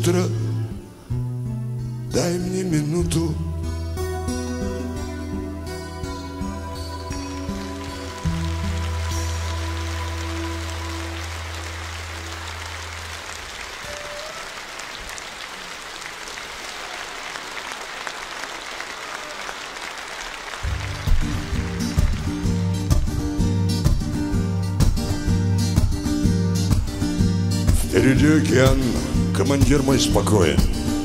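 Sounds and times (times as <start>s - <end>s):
guitar strumming: 0.0s - 14.7s, 20.6s - 31.0s
audience applause: 7.0s - 23.4s.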